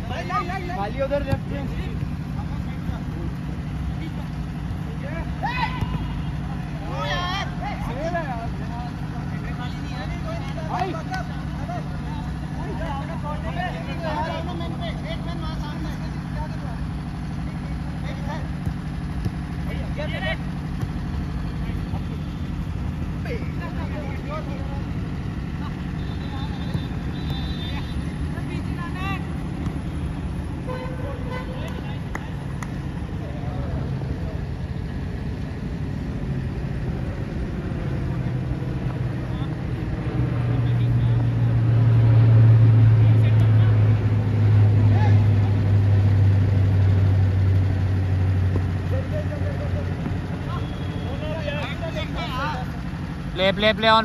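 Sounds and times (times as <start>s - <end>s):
players shouting: 0.0s - 9.2s
ball kicks: 1.2s - 2.2s, 18.5s - 19.5s, 20.6s - 21.2s, 29.4s - 30.0s.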